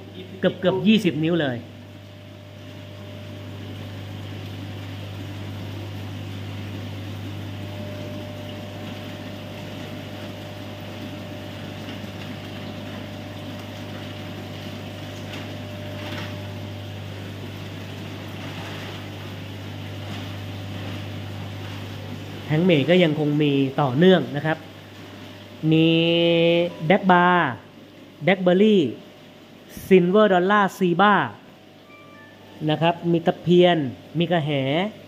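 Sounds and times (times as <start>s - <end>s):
air conditioning: 0.0s - 35.0s
filtration pumps running: 0.0s - 35.0s
low hum: 1.6s - 22.5s.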